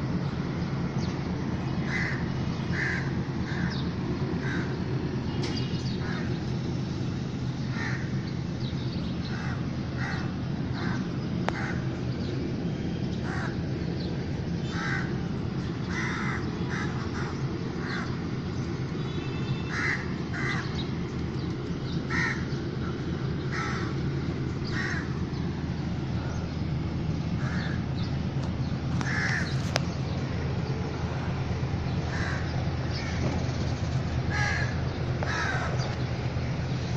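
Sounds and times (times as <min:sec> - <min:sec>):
birds calling: 0:00.0 - 0:36.9
low background rumble: 0:00.0 - 0:36.9.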